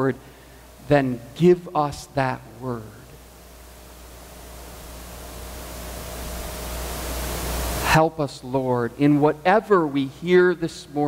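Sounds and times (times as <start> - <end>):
low hum: 0.0 - 9.0
steady hiss: 0.0 - 11.0.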